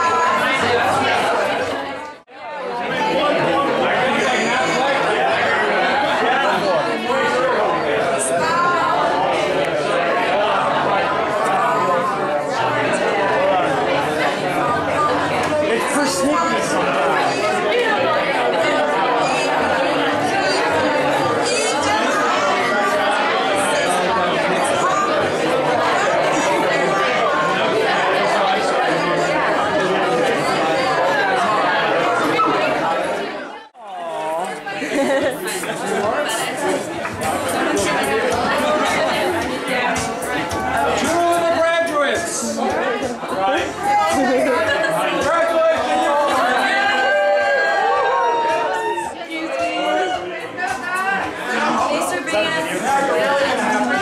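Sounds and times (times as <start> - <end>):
loud overlapping party chatter: 0.0 - 54.0.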